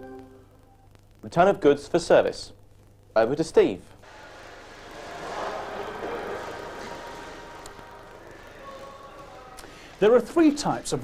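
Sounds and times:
busy workroom background noise: 0.0s - 11.0s.

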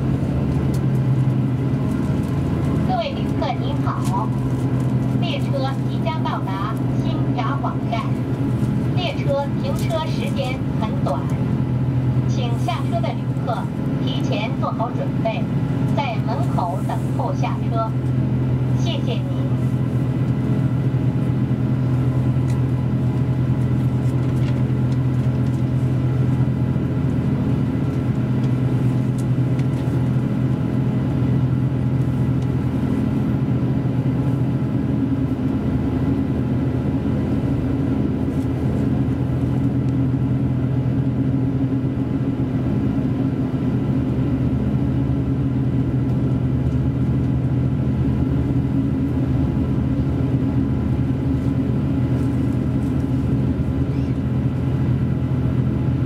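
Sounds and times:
diesel engine hum: 0.0s - 56.0s
train running rumble: 0.0s - 56.0s.

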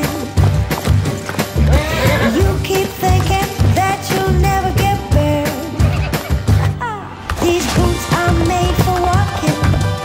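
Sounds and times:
background music with steady beat: 0.0s - 10.0s
pony whinnying: 1.6s - 2.6s.

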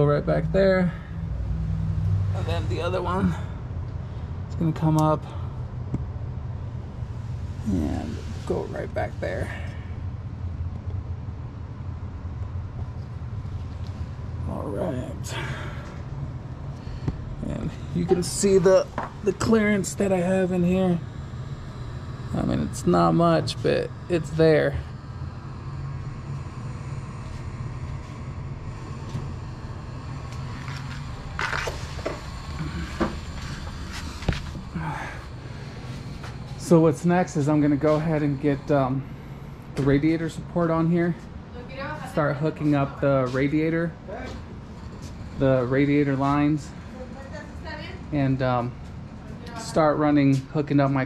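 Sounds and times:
steady low hum: 0.0s - 51.0s
steady low rumble: 0.0s - 51.0s.

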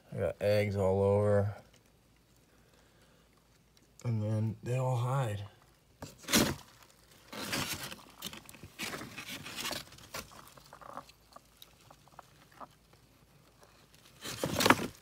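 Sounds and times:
cardboard egg crates rustling: 5.4s - 15.0s.

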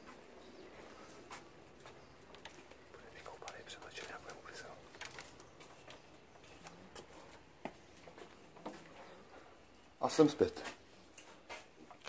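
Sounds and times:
faint sharp clicks: 1.8s - 6.0s
man whispering: 2.8s - 5.3s.

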